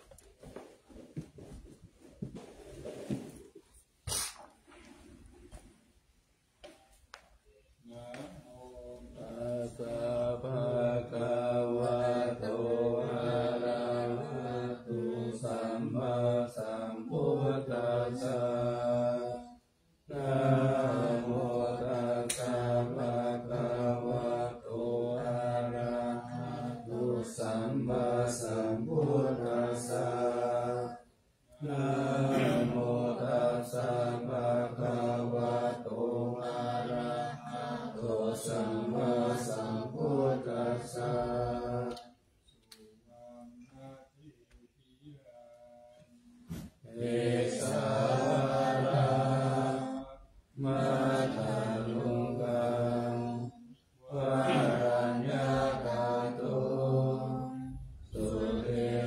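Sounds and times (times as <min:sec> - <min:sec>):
monks chanting: 0:07.8 - 0:42.2, 0:46.5 - 0:59.0.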